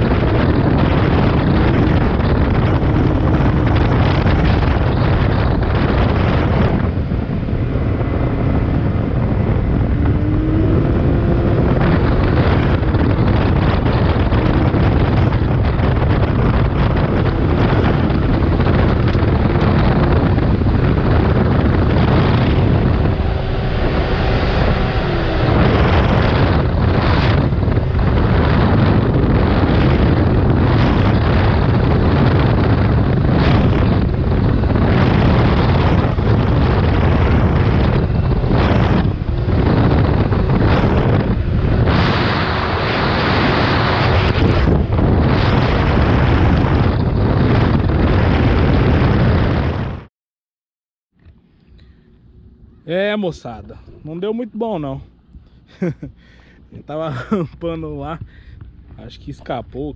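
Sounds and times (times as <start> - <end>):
engine drone: 0.0 - 49.0, 51.2 - 59.8
wind buffeting microphone: 0.0 - 50.1, 51.2 - 59.9.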